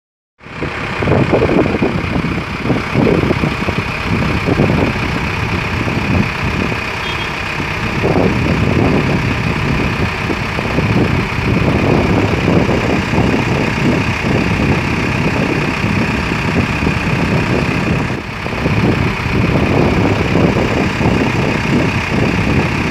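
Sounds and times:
large vehicle engines idling: 0:00.4 - 0:22.9.

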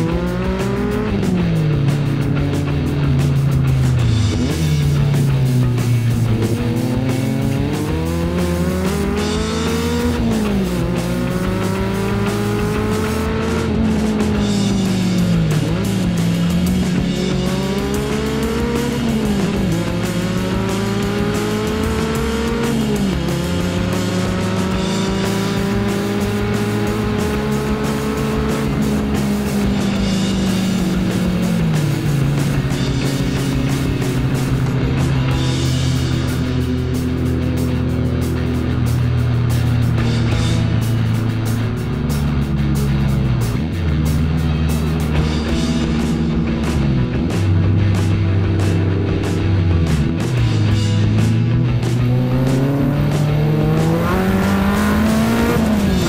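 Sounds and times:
background music: 0:00.0 - 0:56.0
car engine accelerating: 0:00.0 - 0:56.0.

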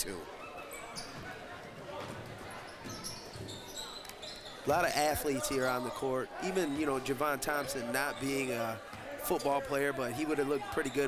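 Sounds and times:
faint crowd chatter: 0:00.0 - 0:11.0
ball bouncing on hardwood court: 0:01.0 - 0:03.6.

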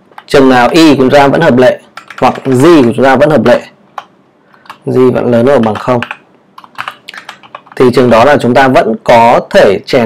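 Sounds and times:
typing on computer keyboard: 0:01.9 - 0:02.6, 0:04.0 - 0:04.9, 0:05.6 - 0:07.9.

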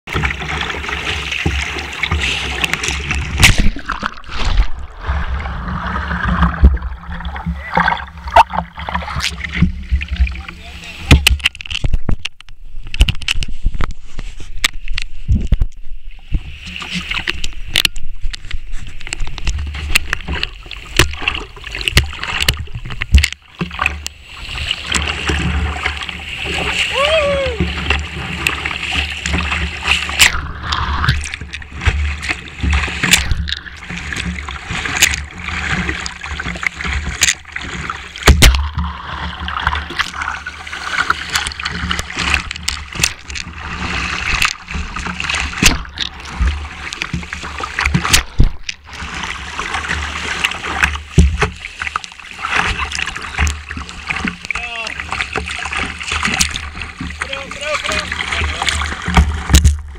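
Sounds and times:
waves and paddle knocking boat: 0:00.0 - 0:59.9
whitewater rushing and splashing: 0:00.1 - 0:11.3, 0:19.4 - 0:59.9.

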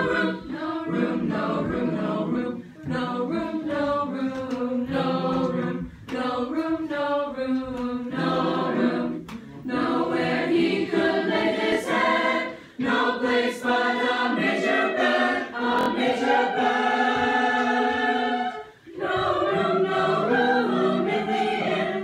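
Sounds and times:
children's choir singing: 0:00.0 - 0:22.0.

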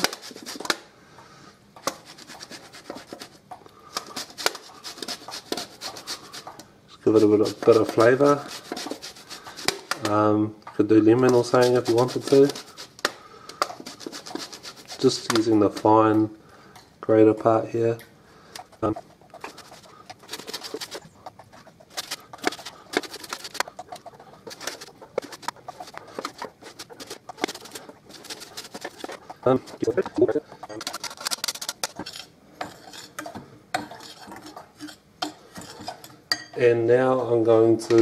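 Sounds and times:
grater rasping on orange rind: 0:00.0 - 0:00.7, 0:01.9 - 0:10.0, 0:11.2 - 0:13.0, 0:13.6 - 0:16.2, 0:18.6 - 0:33.2, 0:33.8 - 0:36.1.

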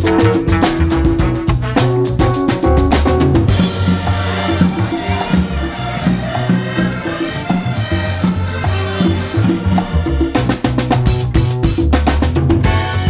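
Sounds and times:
heavy drum hits: 0:00.0 - 0:06.3
upbeat music: 0:00.0 - 0:13.0.

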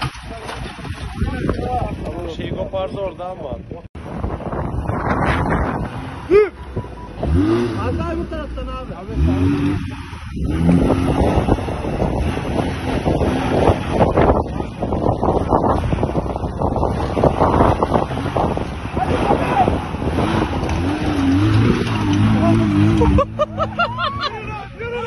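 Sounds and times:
engine revving under load: 0:04.0 - 0:24.3
spinning tyres and flung stones: 0:09.6 - 0:23.4.

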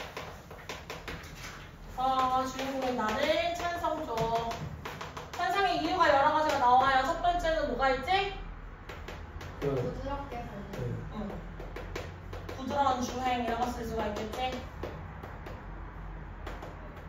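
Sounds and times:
chalk tapping on a blackboard: 0:00.0 - 0:07.2, 0:08.8 - 0:17.0
person speaking: 0:09.6 - 0:11.5.

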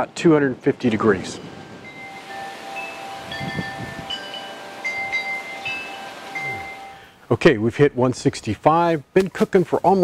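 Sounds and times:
soft hiss of wind: 0:00.0 - 0:10.0
wind chimes ringing: 0:01.2 - 0:07.1.

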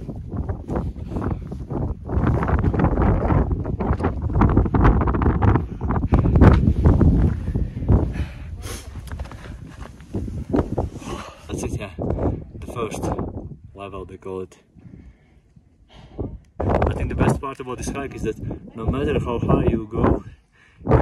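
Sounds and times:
wind buffeting microphone: 0:00.0 - 0:21.0
footsteps crunching on snowy rocks: 0:08.9 - 0:10.9.

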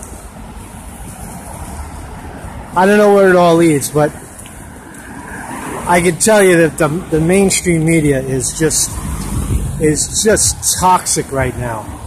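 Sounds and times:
street traffic noise: 0:00.0 - 0:12.0
wind rushing over microphone: 0:08.2 - 0:12.0.

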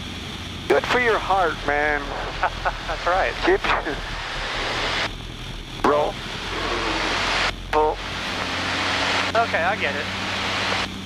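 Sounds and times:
light aircraft engine: 0:00.0 - 0:11.0.

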